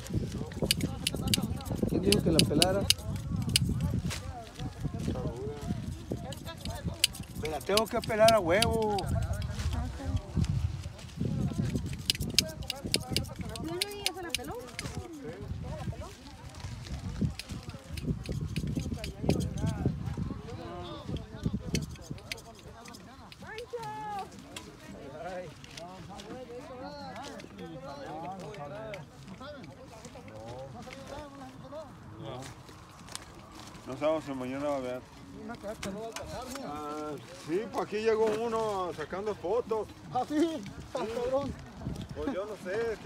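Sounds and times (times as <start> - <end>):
indistinct voices talking: 0.0 - 10.4
people talking: 0.0 - 32.5
sharp clicks: 0.6 - 3.9, 6.4 - 9.5, 11.7 - 14.9.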